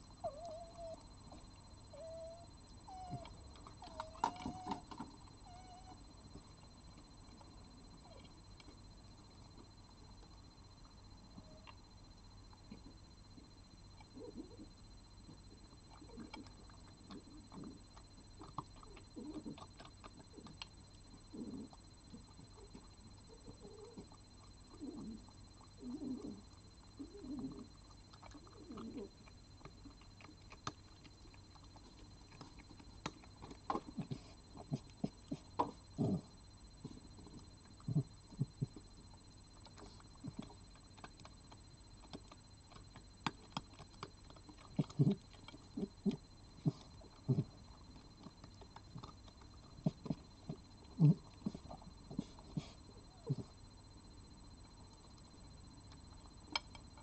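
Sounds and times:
animal low wavering calls: 0:00.0 - 0:06.6, 0:12.7 - 0:31.2, 0:43.7 - 0:53.6.

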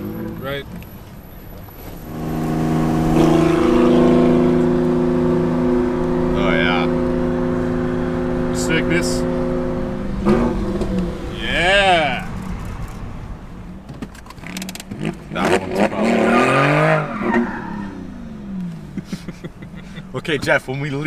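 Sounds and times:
car engine running: 0:00.0 - 0:16.1.

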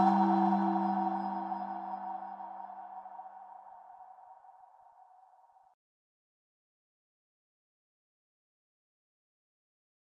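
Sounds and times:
low held note: 0:00.0 - 0:03.3
ringing chime-like tone: 0:00.0 - 0:04.5.

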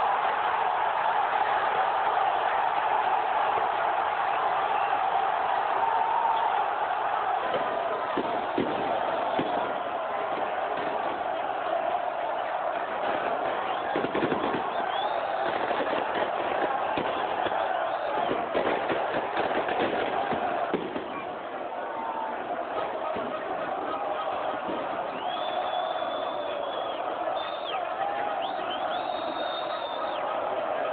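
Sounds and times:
crowd singing and chanting: 0:04.2 - 0:30.9.

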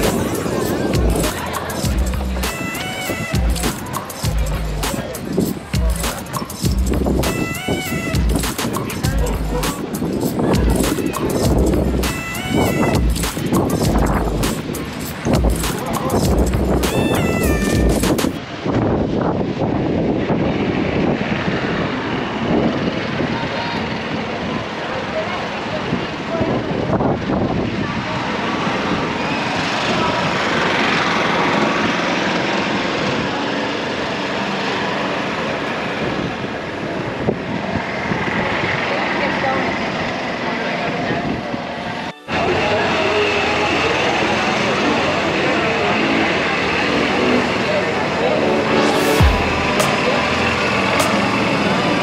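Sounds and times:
short melodic passage: 0:00.0 - 0:10.1, 0:11.0 - 0:15.2, 0:16.4 - 0:18.4, 0:42.1 - 0:43.2, 0:46.0 - 0:52.0
indistinct voices: 0:00.0 - 0:18.4, 0:40.4 - 0:52.0
traffic noise: 0:00.0 - 0:52.0.

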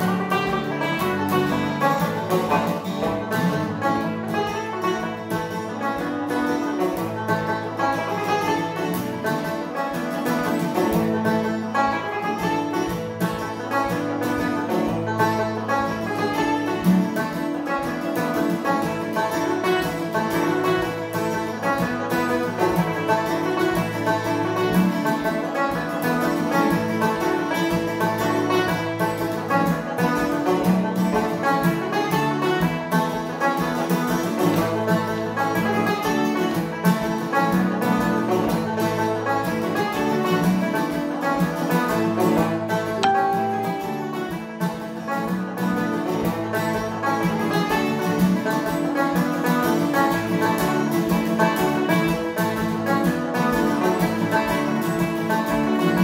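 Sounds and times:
acoustic guitar chords: 0:00.0 - 0:51.3
banjo picking a fast tune: 0:00.0 - 0:56.0.

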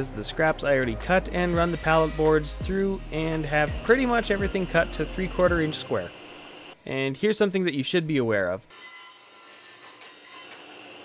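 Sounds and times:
table saw cutting wood: 0:01.2 - 0:06.8, 0:08.7 - 0:11.0
high whine: 0:01.4 - 0:06.8.

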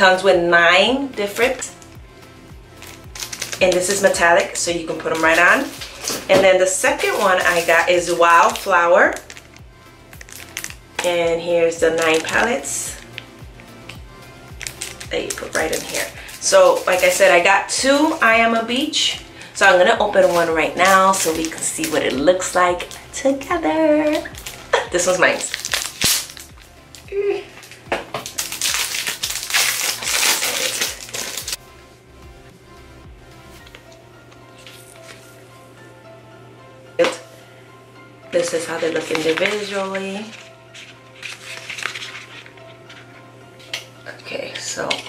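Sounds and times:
quiet music with low beat: 0:00.0 - 0:45.0
plastic wrap crinkling: 0:02.7 - 0:09.6, 0:10.2 - 0:18.3, 0:19.4 - 0:23.0, 0:24.1 - 0:31.6, 0:38.4 - 0:44.3.

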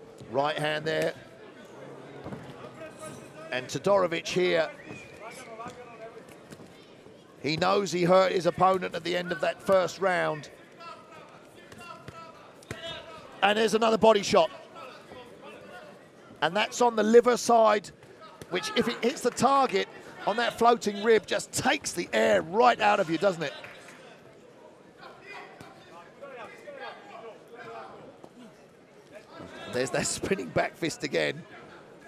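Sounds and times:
faint crowd shouting: 0:18.1 - 0:24.2.

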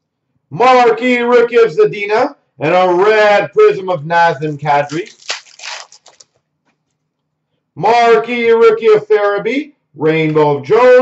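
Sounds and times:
trading cards rustling: 0:04.5 - 0:06.4.

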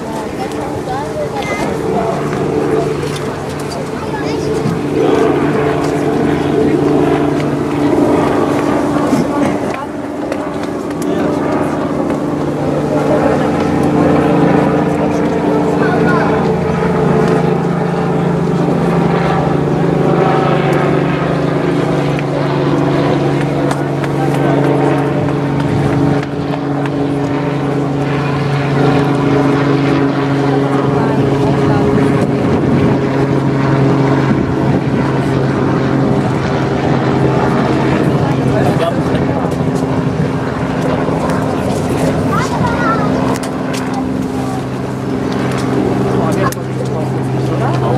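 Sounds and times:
motor drone: 0:00.0 - 0:47.9
people's voices: 0:00.0 - 0:47.9.

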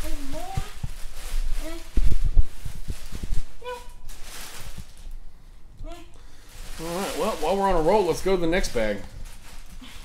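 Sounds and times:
low thumps: 0:00.0 - 0:04.1
plastic bag rustling: 0:00.0 - 0:10.0.

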